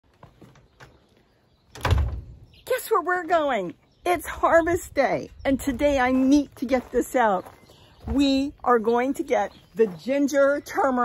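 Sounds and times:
door swinging shut with thump: 1.7 - 2.4.

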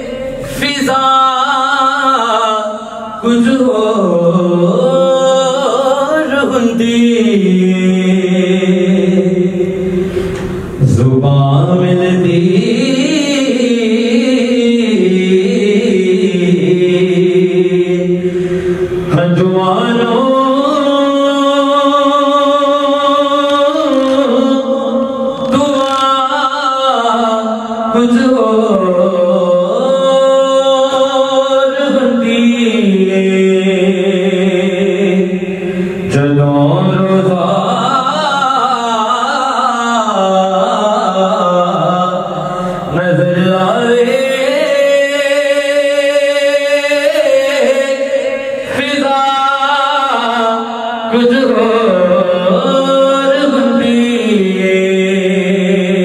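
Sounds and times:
man chanting unaccompanied: 0.0 - 56.0
man singing devotional song: 0.0 - 56.0.

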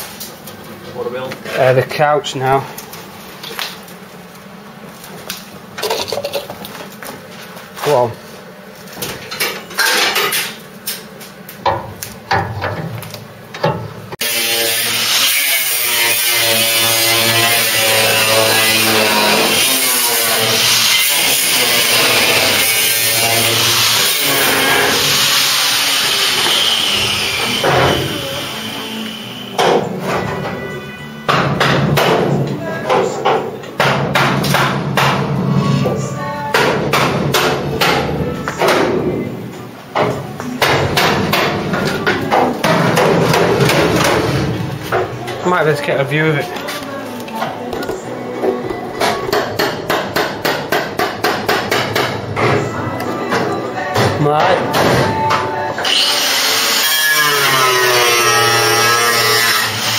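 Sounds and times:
music: 27.1 - 59.9.

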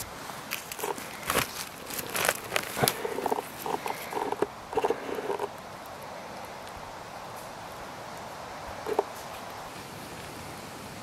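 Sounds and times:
dry leaves and twigs crackling: 0.0 - 10.3.

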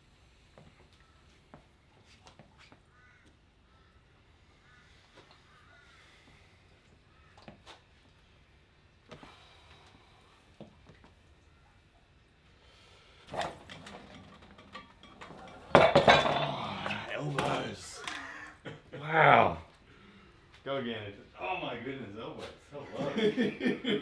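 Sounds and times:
metal clinking: 13.3 - 17.1
man straining and grunting: 16.1 - 19.7.

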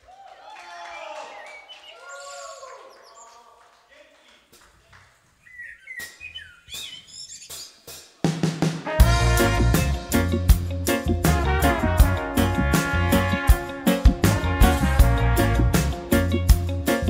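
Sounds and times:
gliding chirping tones: 5.4 - 7.9.

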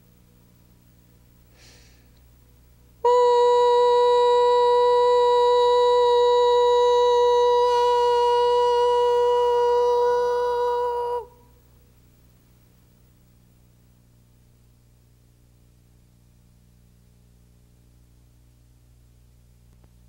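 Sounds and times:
woman humming high tone: 3.0 - 11.6.

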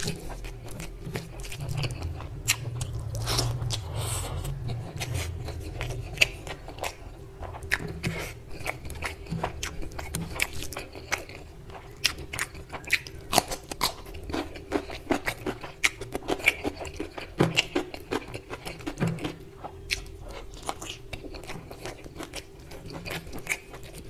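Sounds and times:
chewing and mouth sounds: 0.0 - 24.0.

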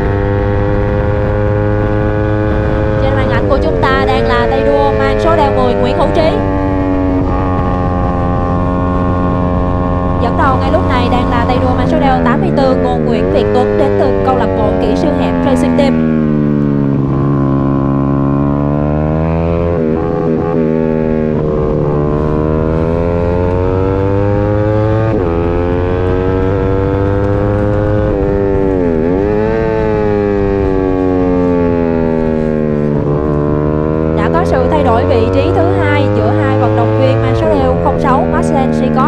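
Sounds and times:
racing motorcycle engine revving: 0.0 - 39.0.

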